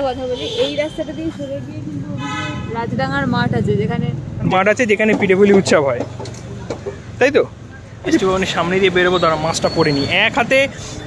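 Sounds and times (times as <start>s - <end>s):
vehicle horn: 0.2s - 1.5s, 2.1s - 2.9s
passing vehicle engine: 0.4s - 11.0s.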